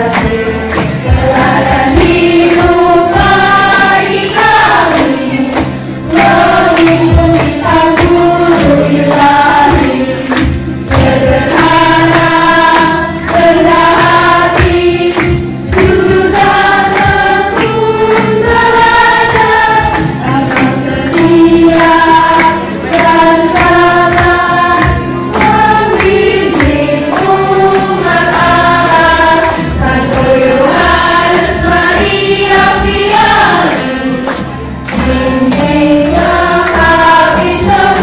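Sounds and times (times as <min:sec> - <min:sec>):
instrumental accompaniment: 0:00.0 - 0:38.0
young choir singing: 0:00.0 - 0:38.0.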